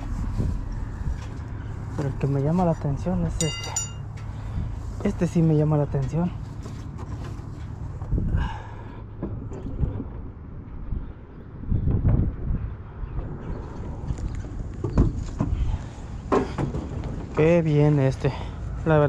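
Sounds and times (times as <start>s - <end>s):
steady low rumble: 0.0s - 6.3s, 7.6s - 19.0s.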